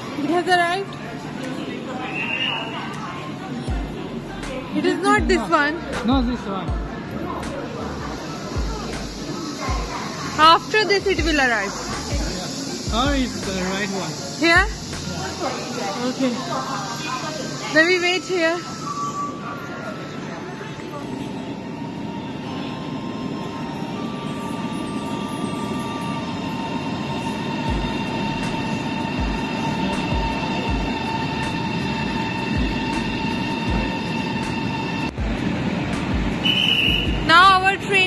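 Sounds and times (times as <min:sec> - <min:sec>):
train rumble: 0:00.0 - 0:38.0.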